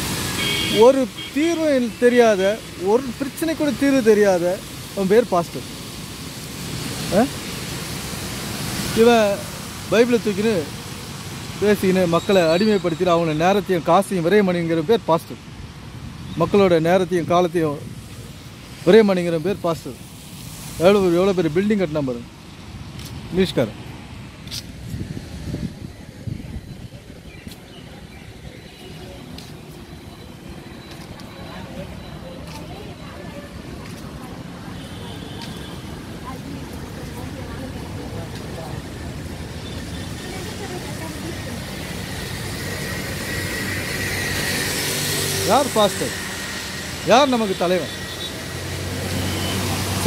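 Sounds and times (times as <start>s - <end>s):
road traffic rumble: 0.0s - 50.0s.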